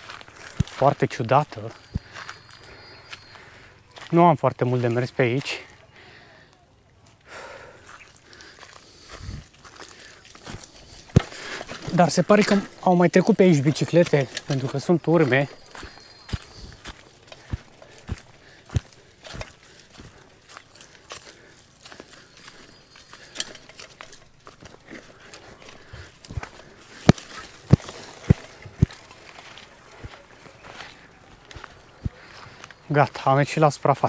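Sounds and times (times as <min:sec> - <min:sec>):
bicycle frame knocking and clattering: 0:23.1 - 0:29.3.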